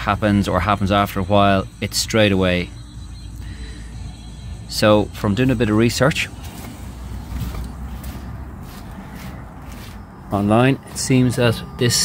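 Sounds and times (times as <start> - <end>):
steady low rumble: 0.0 - 12.0
footsteps on block paving: 6.4 - 11.4.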